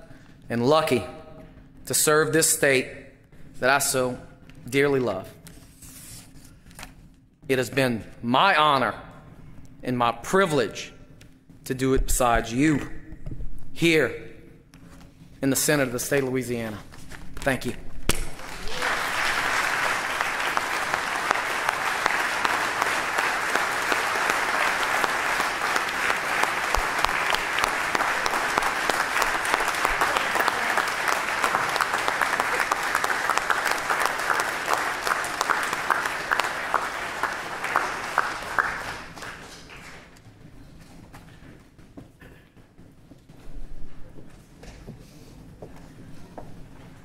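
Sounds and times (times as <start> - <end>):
crowd applause: 18.3 - 40.2.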